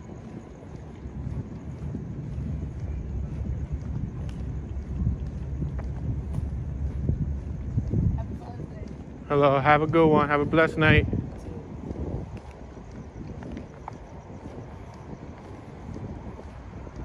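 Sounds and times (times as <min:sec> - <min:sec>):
footstep ticks: 0:00.0 - 0:17.0
wind rumble on microphone: 0:00.0 - 0:17.0.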